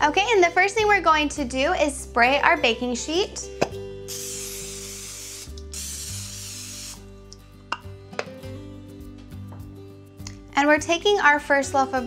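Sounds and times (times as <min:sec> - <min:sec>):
aerosol spray can hissing: 0:04.1 - 0:07.0.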